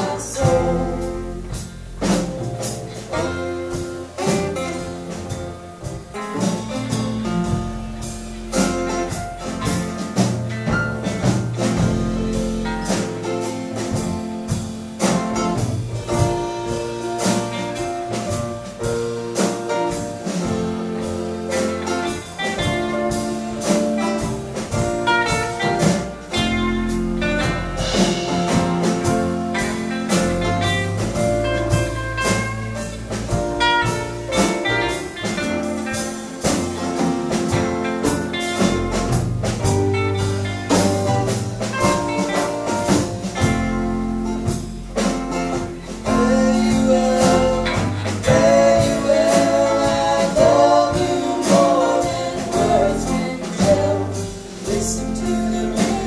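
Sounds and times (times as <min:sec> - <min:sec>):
person singing: 0:00.0 - 0:02.1, 0:45.5 - 0:56.0
live band playing slow ballad: 0:00.0 - 0:56.0.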